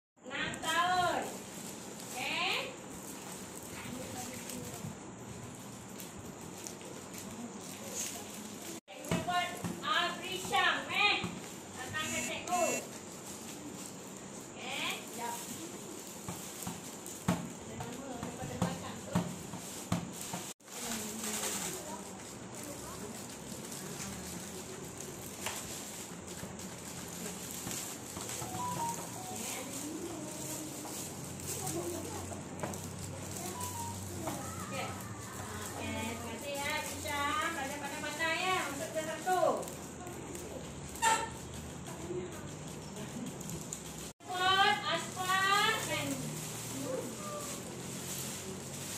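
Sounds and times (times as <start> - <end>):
faint background music: 6.6 - 48.9
person speaking clearly: 12.0 - 12.9.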